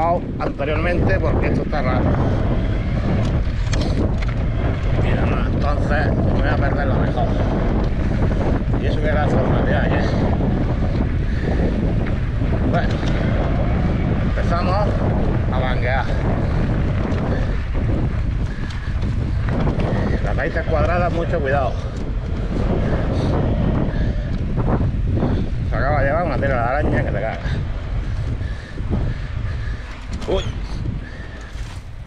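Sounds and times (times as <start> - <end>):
wind buffeting microphone: 0.0 - 32.0
bike rattling over stones: 1.4 - 23.8, 26.8 - 32.0
tyres on gravel: 29.3 - 32.0.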